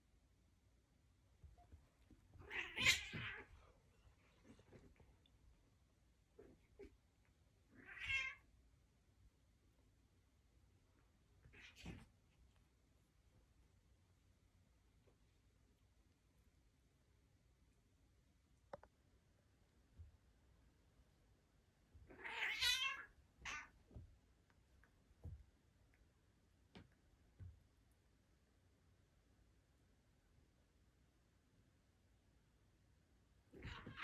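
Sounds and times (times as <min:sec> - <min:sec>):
cats play-fighting: 0:01.4 - 0:05.3, 0:11.0 - 0:12.7, 0:33.5 - 0:34.0
cat meowing: 0:02.4 - 0:03.5, 0:07.8 - 0:08.4, 0:22.1 - 0:23.7.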